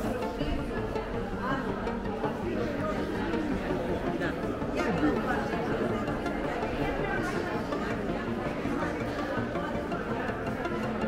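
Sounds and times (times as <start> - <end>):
chatter of people talking: 0.0 - 11.0.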